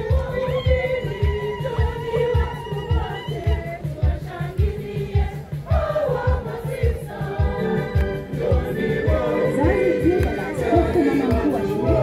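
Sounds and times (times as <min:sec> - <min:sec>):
choir singing upbeat church song: 0:00.0 - 0:12.0
drum and bass beat: 0:00.0 - 0:12.0.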